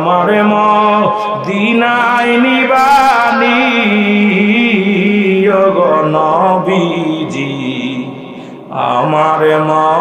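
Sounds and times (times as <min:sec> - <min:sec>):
man chanting into microphones: 0:00.0 - 0:10.0.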